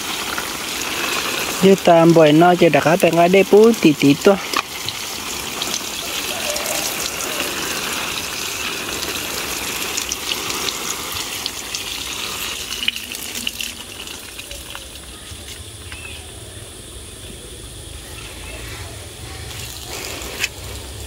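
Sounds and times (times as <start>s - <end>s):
watering can spraying onto leaves: 0.0s - 16.4s, 18.3s - 21.0s.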